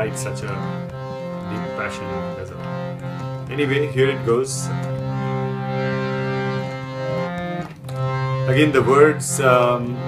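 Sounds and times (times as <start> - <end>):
drone instrument holding a chord: 0.0 - 10.0.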